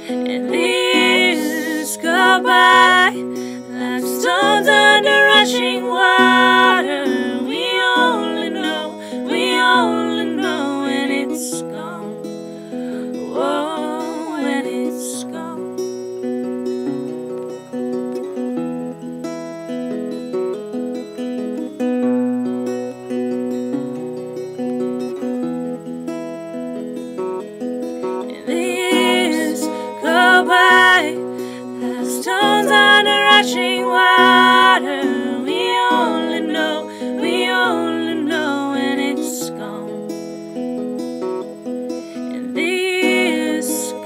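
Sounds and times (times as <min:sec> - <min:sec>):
woman singing: 0:00.0 - 0:12.1, 0:12.9 - 0:15.8, 0:28.3 - 0:40.1, 0:42.2 - 0:44.0
acoustic guitar chords: 0:00.0 - 0:44.0.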